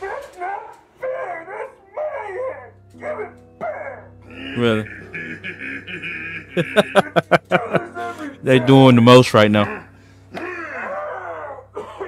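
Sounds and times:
person groaning: 4.2s - 7.2s, 9.6s - 12.0s.

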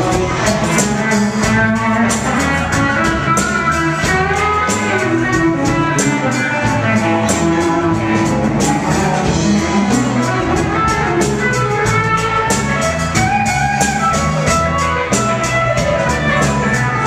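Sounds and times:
bass guitar: 0.0s - 17.0s
drum and cymbal hits: 0.0s - 17.0s
electric guitar: 0.0s - 17.0s
keyboard: 0.0s - 17.0s.

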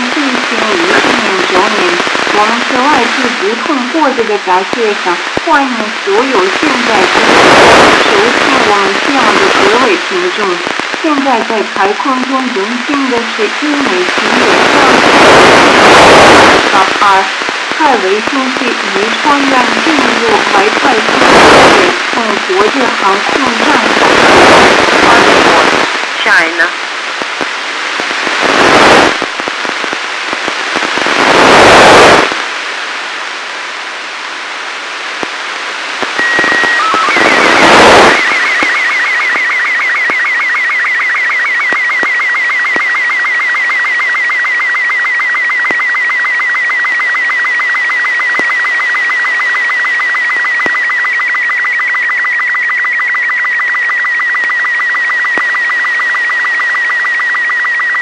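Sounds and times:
radio hiss and static: 0.0s - 58.0s
high whistle with rapid ticks: 36.1s - 58.0s.

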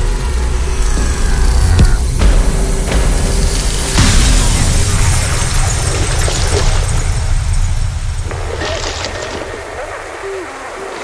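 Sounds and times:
deep bass rumble: 0.0s - 10.1s
harsh distorted noise bursts: 0.0s - 11.0s.

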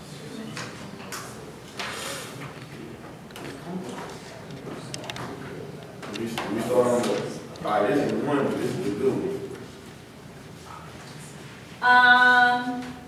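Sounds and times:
soft clicks and rustles: 0.5s - 8.9s.

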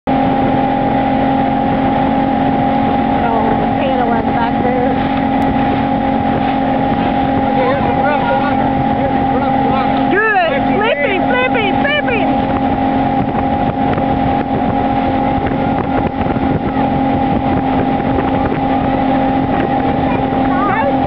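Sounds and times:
motorboat engine humming: 0.0s - 21.0s
wind: 0.0s - 21.0s
wake rushing: 0.1s - 21.0s
faint voices: 6.8s - 12.5s, 19.6s - 21.0s.

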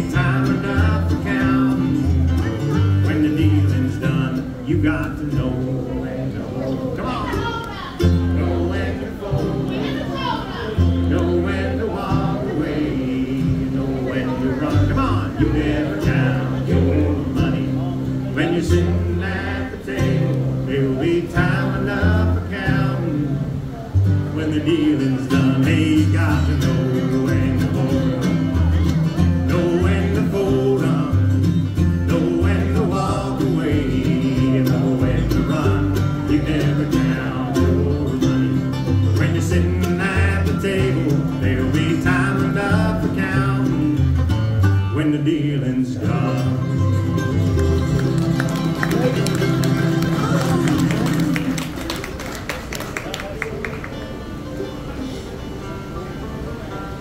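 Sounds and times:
banjo: 0.0s - 51.8s
mandolin: 0.0s - 52.2s, 53.5s - 57.0s
acoustic guitar: 0.0s - 57.0s
upright bass: 0.0s - 57.0s.

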